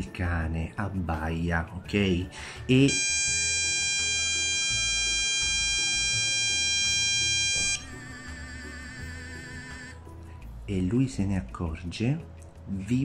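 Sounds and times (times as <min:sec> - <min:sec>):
long electronic beep: 0:02.9 - 0:09.9.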